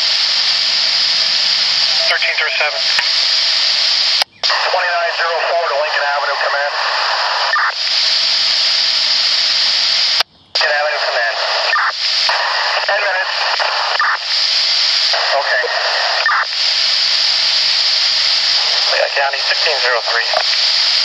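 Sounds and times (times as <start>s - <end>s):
muffled radio voice transmissions: 0.0s - 21.0s
static hiss: 0.0s - 21.0s.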